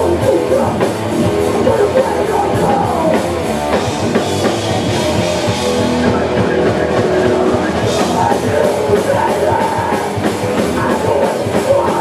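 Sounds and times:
distorted electric guitars droning: 0:00.0 - 0:12.0.

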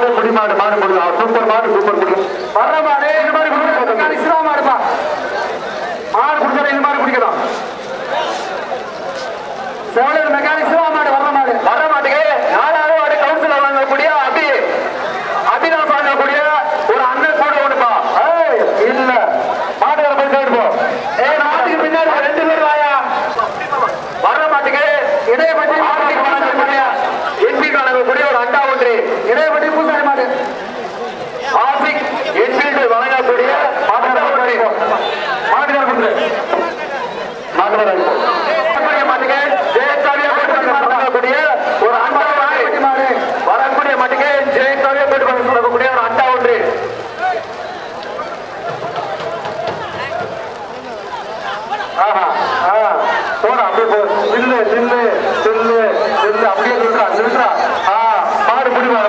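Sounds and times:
man talking fast: 0:00.0 - 0:30.6, 0:31.2 - 0:47.5, 0:51.6 - 0:59.0.

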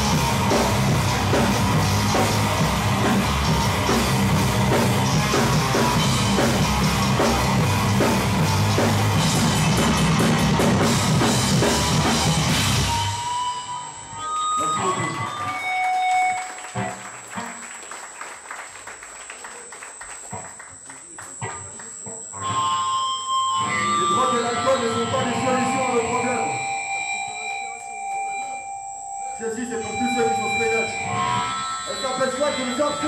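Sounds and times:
guitar feedback squeals: 0:00.0 - 0:18.0, 0:21.3 - 0:33.0
amp high whine: 0:00.0 - 0:33.0.

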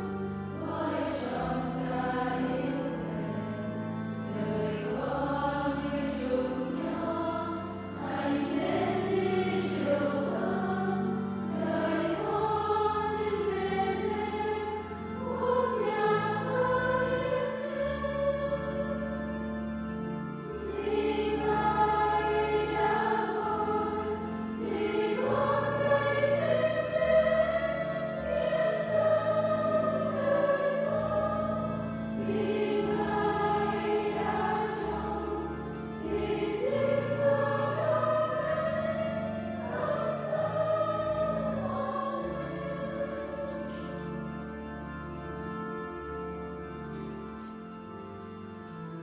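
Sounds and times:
choir singing a hymn: 0:00.0 - 0:49.0
instrumental accompaniment: 0:00.0 - 0:49.0.

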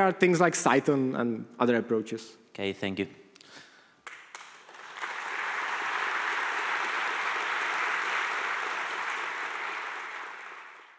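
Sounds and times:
audience applauding: 0:04.0 - 0:10.9.

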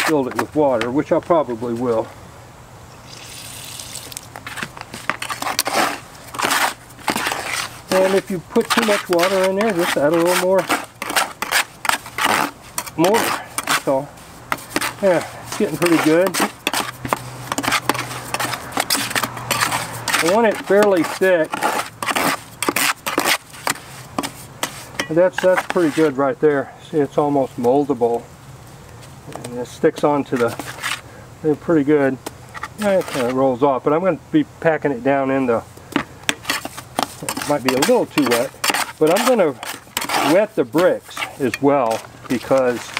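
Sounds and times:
trowel scraping mortar in bucket: 0:00.0 - 0:00.6, 0:04.4 - 0:26.3, 0:30.2 - 0:31.0, 0:32.6 - 0:33.4, 0:36.3 - 0:42.9.

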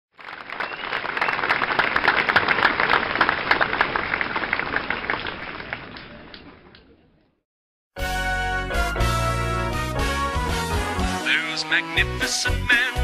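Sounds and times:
crowd applause: 0:00.2 - 0:06.6.

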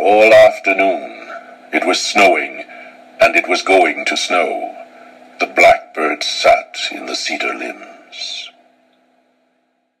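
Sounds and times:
man speaking: 0:00.0 - 0:08.6
faint low hum: 0:00.0 - 0:10.0.

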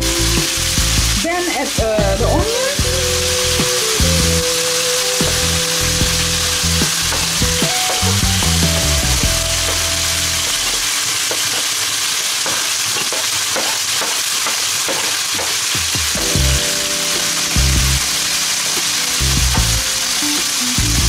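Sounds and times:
onions and chicken sizzling in oil: 0:00.0 - 0:21.0.

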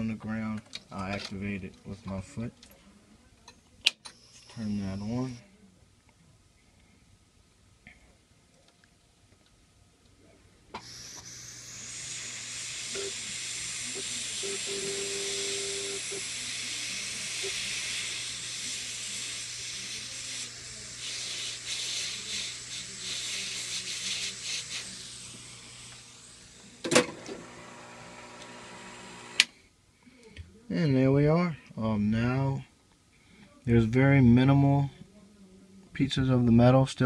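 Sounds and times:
heat gun blowing hot air: 0:10.8 - 0:29.5.

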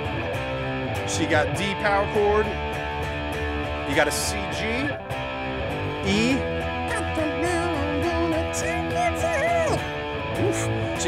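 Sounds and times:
electric guitar strumming chords: 0:00.0 - 0:11.0.

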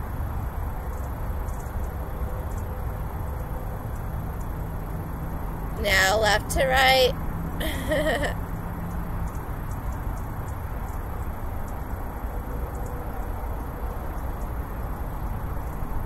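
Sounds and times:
low outdoor rumble: 0:04.4 - 0:08.4
woman's brief vocal sound: 0:07.6 - 0:08.4.

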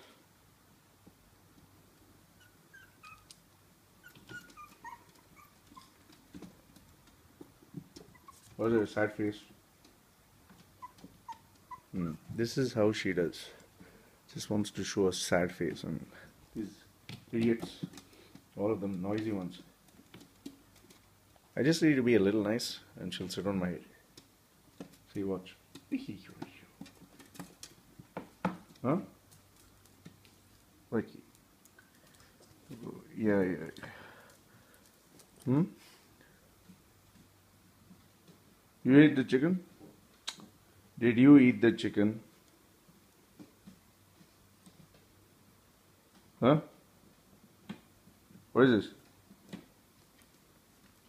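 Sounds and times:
small dogs whimpering: 0:02.4 - 0:03.4, 0:04.0 - 0:06.0, 0:08.0 - 0:08.9, 0:10.8 - 0:12.3.

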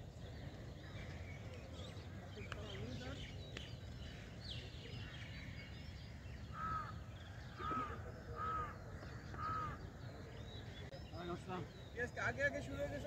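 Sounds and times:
crow cawing: 0:06.5 - 0:09.9.

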